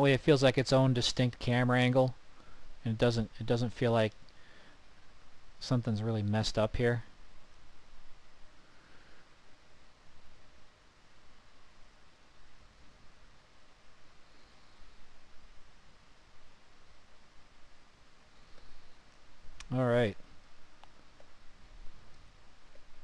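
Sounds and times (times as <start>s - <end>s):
low room hiss: 0.0s - 23.0s.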